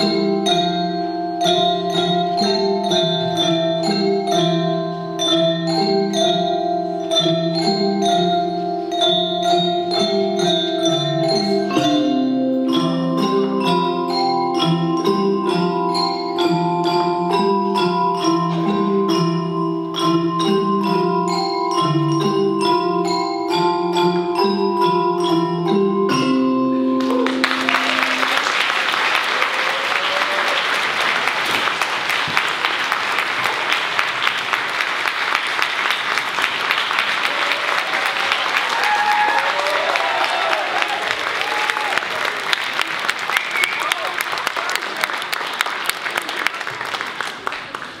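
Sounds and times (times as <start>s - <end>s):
xylophones and metallophones: 0.0s - 29.0s
audience applauding: 27.0s - 48.0s
voices among clapping: 27.0s - 48.0s.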